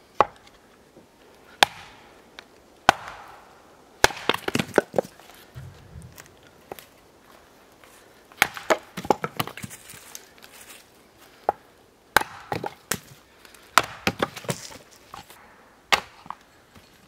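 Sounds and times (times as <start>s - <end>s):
hatchet chopping log: 0.2s - 0.4s, 1.6s - 2.0s, 2.8s - 3.4s, 4.0s - 5.1s, 8.4s - 9.7s, 12.2s - 13.1s, 13.7s - 16.4s.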